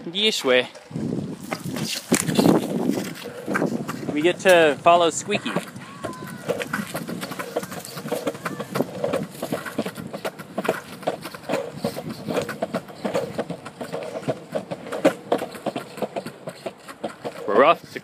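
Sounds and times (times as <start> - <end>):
longboard wheels rolling on concrete: 0.0 - 18.0
wheel clacks: 0.5 - 18.0.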